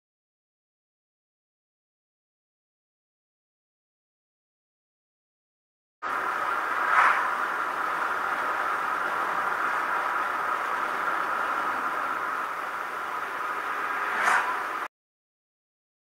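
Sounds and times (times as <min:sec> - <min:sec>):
car road and tyre noise: 0:06.0 - 0:14.9
oncoming cars passing: 0:06.0 - 0:14.9.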